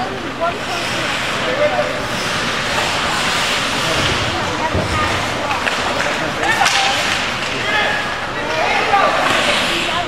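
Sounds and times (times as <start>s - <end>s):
ice rink noise: 0.0s - 10.0s
spectators and players calling out: 0.0s - 10.0s.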